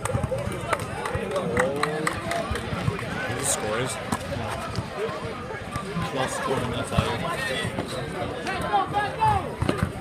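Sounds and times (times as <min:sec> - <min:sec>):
basketball bouncing on asphalt: 0:00.0 - 0:01.1
crowd chatter: 0:00.0 - 0:10.0.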